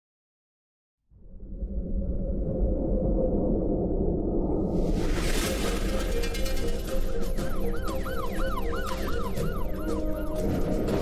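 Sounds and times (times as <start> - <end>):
low rumbling drone: 1.1 - 11.0
background music: 4.9 - 11.0
siren yelping up and down: 7.4 - 11.0.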